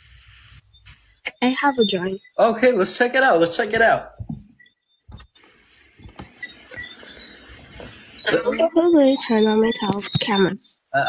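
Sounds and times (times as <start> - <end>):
faint microphone background noise: 0.0 - 11.0.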